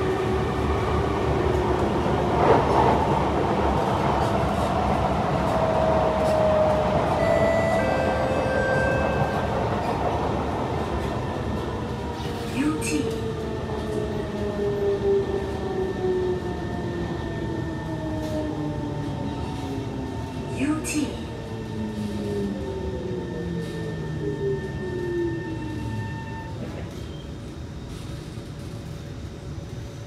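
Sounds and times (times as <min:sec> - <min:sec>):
train low rumble: 0:00.0 - 0:30.0.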